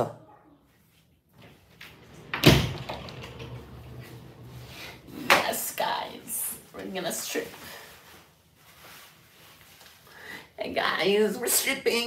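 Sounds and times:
low hum: 0:01.7 - 0:05.9.

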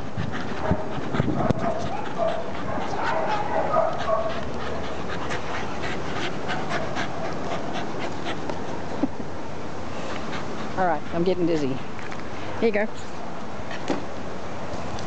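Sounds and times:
dogs panting: 0:00.0 - 0:08.9, 0:10.0 - 0:12.0.

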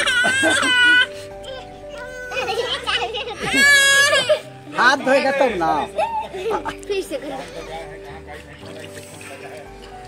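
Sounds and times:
toddler crying: 0:00.0 - 0:04.6, 0:05.9 - 0:06.8.

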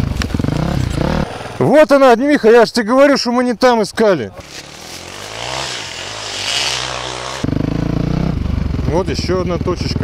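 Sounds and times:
motorcycle engine running: 0:00.0 - 0:01.7, 0:04.4 - 0:10.0.

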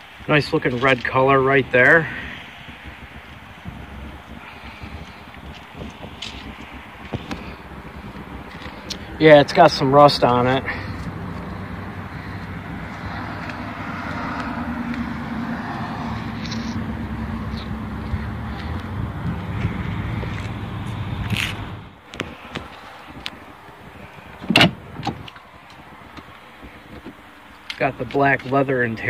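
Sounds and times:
car engine running: 0:00.0 - 0:29.0.

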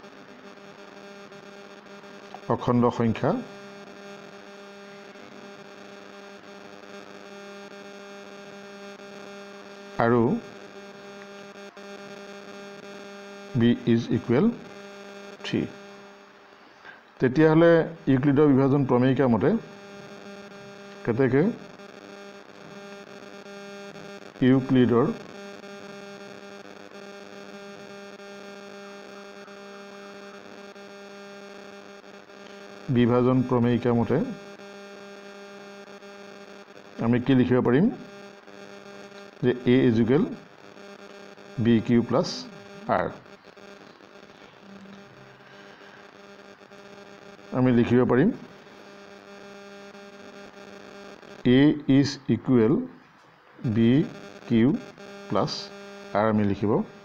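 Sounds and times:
electrical hum: 0:00.0 - 0:57.0.

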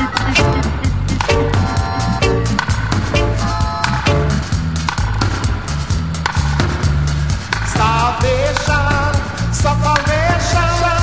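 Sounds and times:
reggae bass line and drums: 0:00.0 - 0:11.0
wavering melody line: 0:00.3 - 0:04.6.

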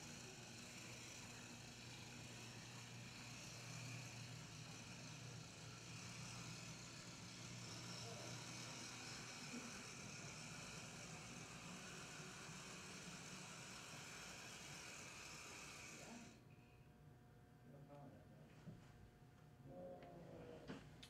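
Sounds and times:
model train motor whirring: 0:00.0 - 0:16.4.

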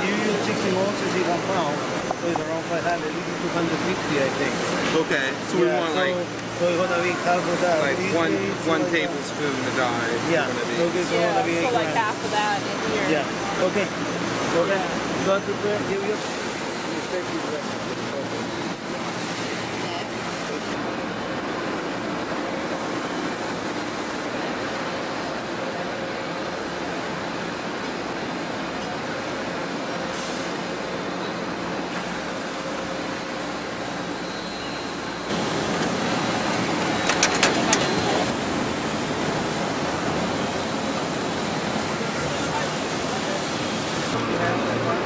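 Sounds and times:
factory machinery noise: 0:00.0 - 0:45.0
indistinct voices: 0:32.8 - 0:45.0.

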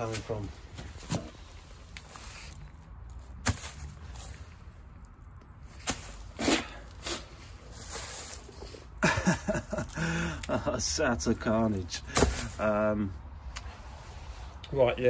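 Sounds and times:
man talking: 0:00.0 - 0:00.6, 0:10.4 - 0:13.2, 0:14.6 - 0:15.0.

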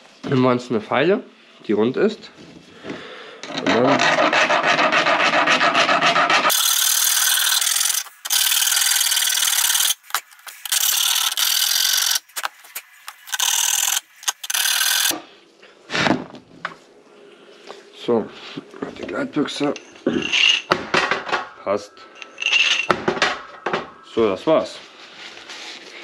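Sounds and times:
file rasping metal: 0:03.5 - 0:12.2, 0:13.2 - 0:15.2.

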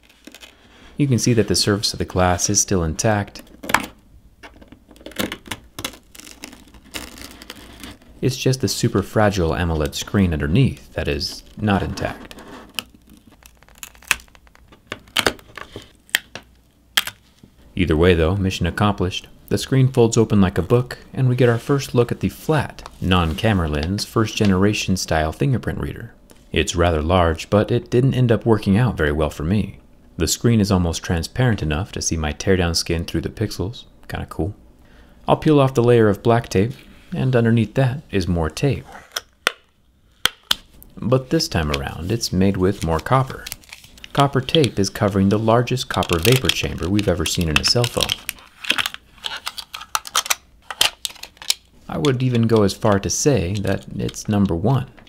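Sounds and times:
adhesive tape peeling with snaps: 0:05.1 - 0:08.0, 0:12.7 - 0:15.4.

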